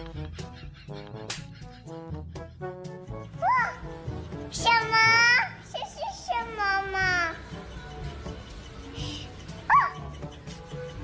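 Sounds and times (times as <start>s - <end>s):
background music with light beat: 0.0s - 11.0s.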